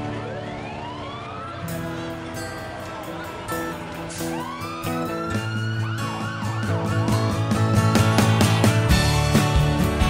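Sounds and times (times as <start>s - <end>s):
siren sweeping in pitch: 0.0s - 8.2s
music playing: 0.0s - 10.0s.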